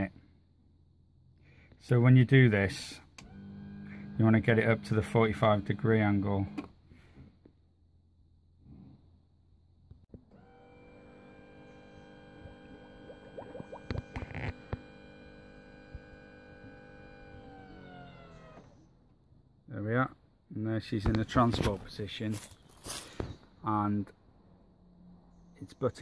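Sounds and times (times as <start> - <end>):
hydraulic pump whine: 3.0 - 7.4, 10.1 - 19.0.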